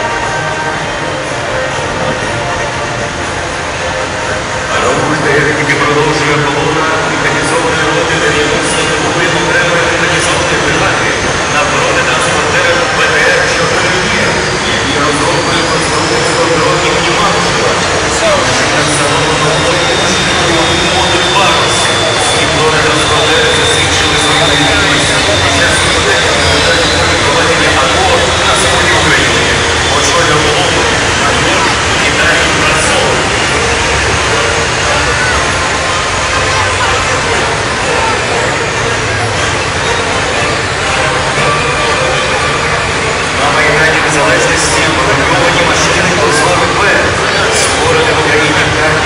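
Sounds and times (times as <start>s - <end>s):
crowd chatter: 0.0s - 49.0s
tracked vehicles engine and tracks: 0.0s - 49.0s.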